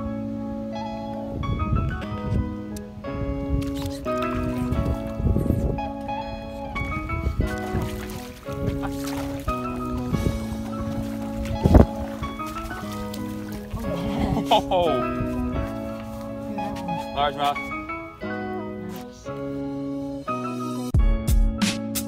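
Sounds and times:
music of sustained chords: 0.0s - 22.0s
low handling rumble: 3.3s - 18.5s.

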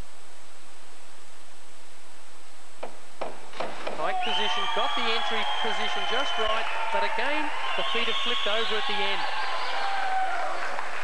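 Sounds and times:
faint pool hall ambience: 0.0s - 11.0s
recording hiss: 0.0s - 11.0s.

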